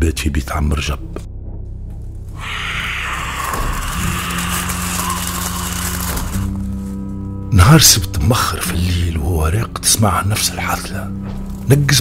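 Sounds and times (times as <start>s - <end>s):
low music drone: 1.3s - 12.0s.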